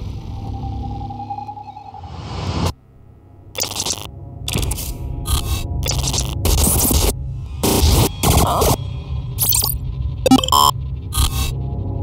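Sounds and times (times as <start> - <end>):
held electronic tone: 9.4 - 10.7.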